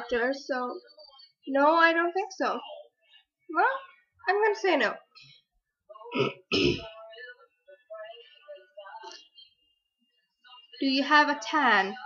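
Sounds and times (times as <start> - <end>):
woman coughing: 6.1 - 7.0.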